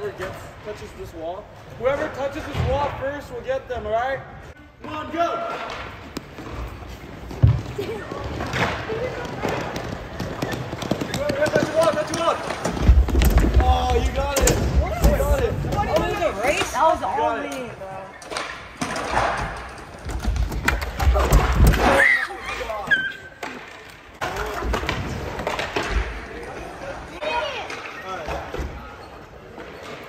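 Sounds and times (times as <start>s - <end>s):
thumps of bodies and skateboards: 5.5s - 16.8s, 18.2s - 22.3s, 22.9s - 26.3s.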